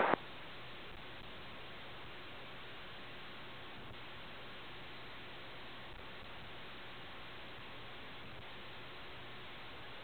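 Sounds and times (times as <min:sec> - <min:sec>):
faint radio hiss: 0:00.0 - 0:10.0.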